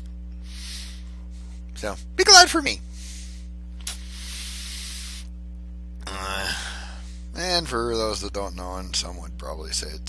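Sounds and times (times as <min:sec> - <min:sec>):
low electrical hum: 0:00.0 - 0:10.0
soft hiss: 0:02.8 - 0:05.4.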